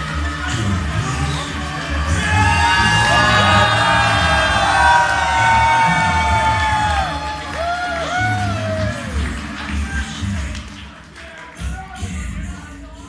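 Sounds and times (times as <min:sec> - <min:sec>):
crowd cheering and whooping: 0:00.0 - 0:10.1
loud concert music: 0:00.0 - 0:13.0.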